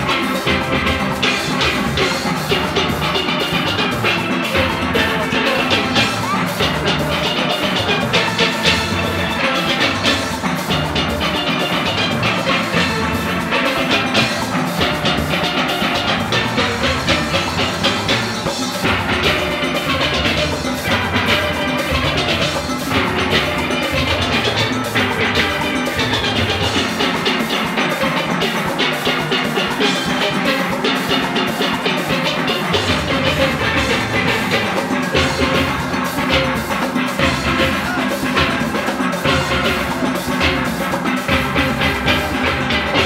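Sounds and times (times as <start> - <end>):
drums brisk rhythm: 0.0 - 43.0
steelpans playing: 0.0 - 43.0.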